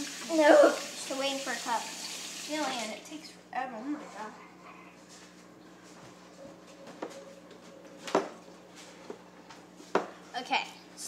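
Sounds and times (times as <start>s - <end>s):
faint hum: 3.0s - 11.0s.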